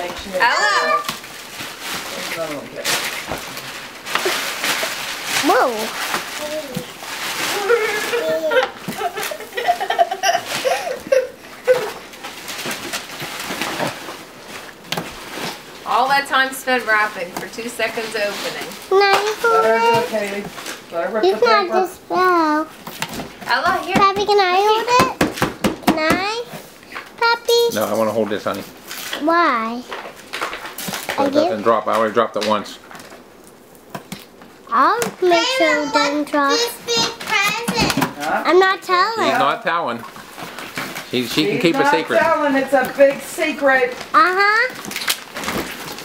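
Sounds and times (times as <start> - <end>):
wrapping paper tearing: 0.5 - 16.3, 17.8 - 21.8, 40.2 - 46.0
child's high-pitched vocalization: 7.5 - 8.7, 34.7 - 37.7.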